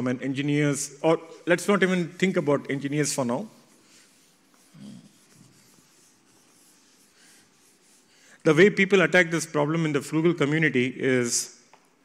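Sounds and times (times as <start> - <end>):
chalk scratching on blackboard: 1.2 - 8.8.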